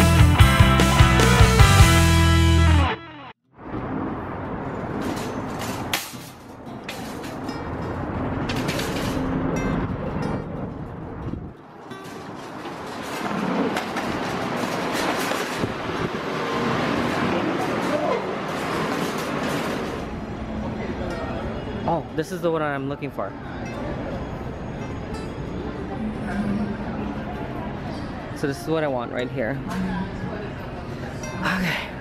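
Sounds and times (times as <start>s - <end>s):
music: 0.0s - 3.4s
shopping cart rattling as it rolls: 8.3s - 9.5s, 11.8s - 20.1s.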